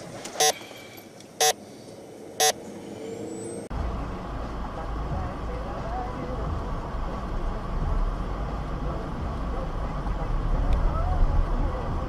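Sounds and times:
vehicle and road noise rumble: 0.0s - 12.0s
short loud beeps: 0.4s - 0.6s.

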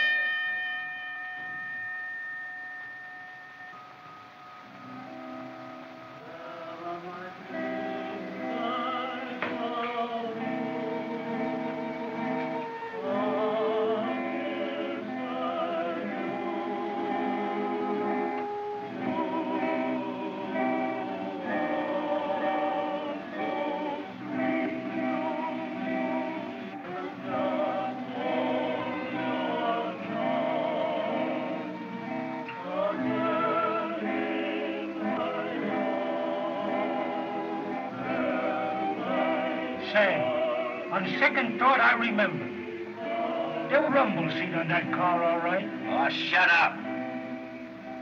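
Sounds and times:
voices singing together: 4.7s - 48.0s.

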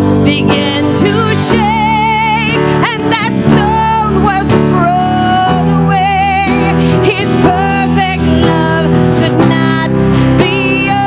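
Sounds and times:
worship band music: 0.0s - 11.0s.

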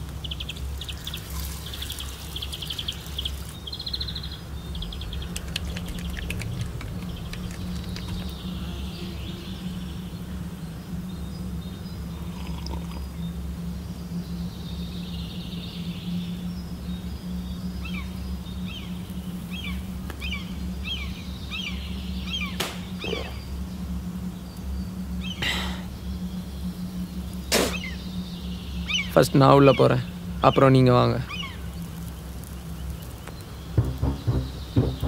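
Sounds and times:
low steady drone: 0.0s - 35.0s.

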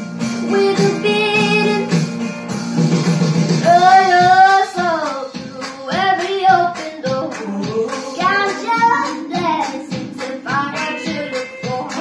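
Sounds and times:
instrumental accompaniment: 0.0s - 12.0s
girl singing pop song: 0.1s - 2.3s, 3.5s - 12.0s.

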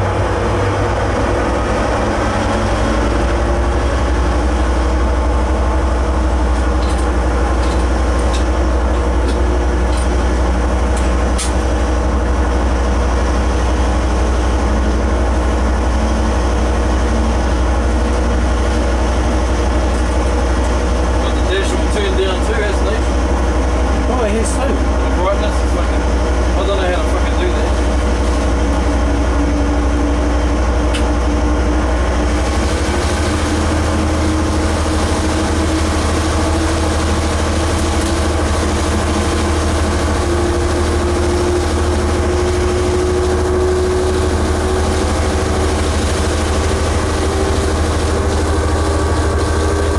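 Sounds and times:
diesel engine drone: 0.0s - 49.9s
locomotive cab rumble: 0.0s - 49.9s
rising whine: 0.0s - 49.9s.

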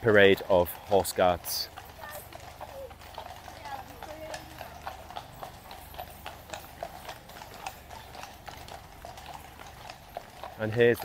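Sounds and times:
horse hooves clopping on tarmac: 0.0s - 11.0s.

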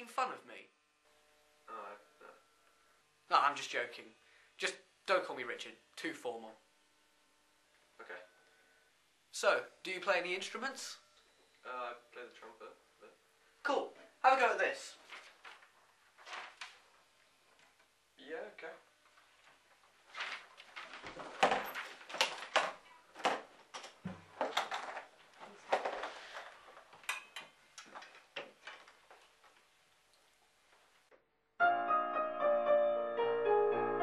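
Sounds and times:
trumpet and piano music: 31.6s - 34.0s.

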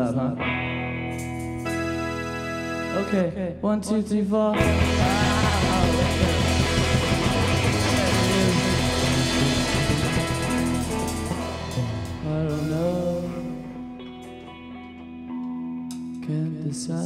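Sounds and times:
held guitar and keyboard notes: 0.0s - 17.0s
rock band playing: 0.4s - 3.3s, 4.6s - 16.3s.

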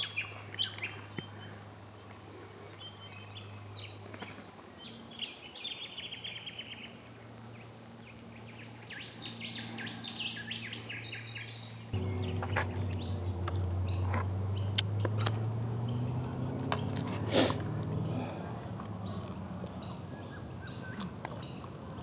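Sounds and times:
bird trills: 9.0s - 17.1s
sharp bird chirps: 11.5s - 17.1s
steady low hum: 11.7s - 20.6s.

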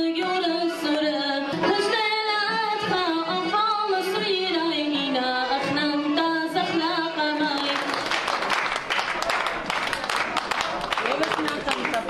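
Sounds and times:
woman singing into a microphone: 0.0s - 8.0s.

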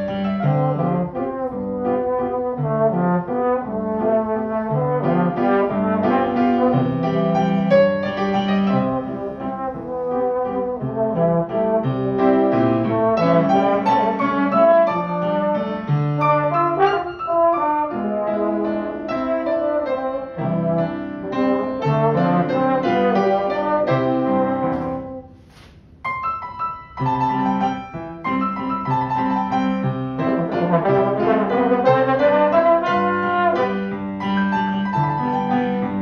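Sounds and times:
slide trombone melody: 0.0s - 25.4s, 27.0s - 36.0s
piano accompaniment: 0.0s - 36.0s.

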